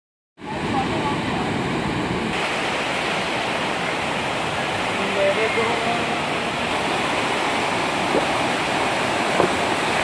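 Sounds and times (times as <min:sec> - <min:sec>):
waterfall roaring: 0:00.4 - 0:10.0.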